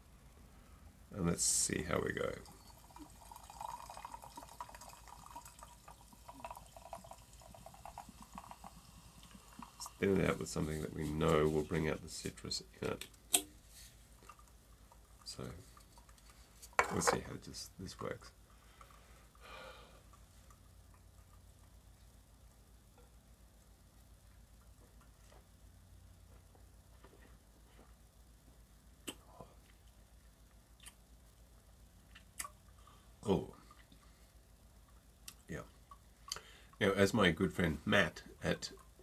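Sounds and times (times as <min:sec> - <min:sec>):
tonic water fizzing: 0:01.9 - 0:12.6.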